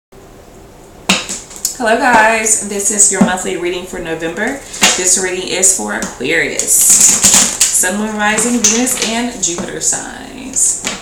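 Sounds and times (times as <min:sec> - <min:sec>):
woman speaking: 0:01.7 - 0:10.9.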